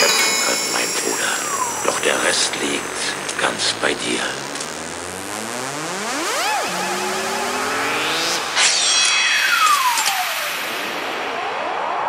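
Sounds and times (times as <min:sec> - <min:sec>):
gliding synthesizer tones: 0:00.0 - 0:11.3
long falling synth sweep: 0:00.6 - 0:11.7
sharp electronic hit: 0:06.6 - 0:11.1.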